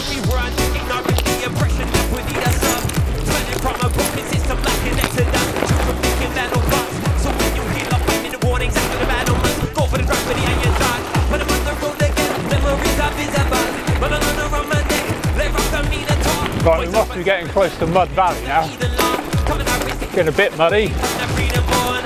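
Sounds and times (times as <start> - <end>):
beatbox music: 0.0 - 22.0
bike tyres on gravel: 0.0 - 22.0.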